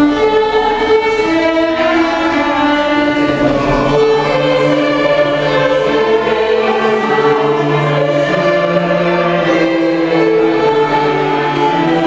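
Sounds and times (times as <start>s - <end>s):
choir singing: 0.0s - 12.0s
string ensemble: 0.0s - 12.0s.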